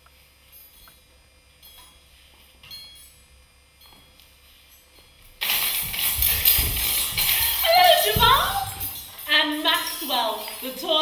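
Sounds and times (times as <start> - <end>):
metallic chime tinkles: 0.4 - 11.0
jangling rattle of metal jingles: 4.6 - 11.0.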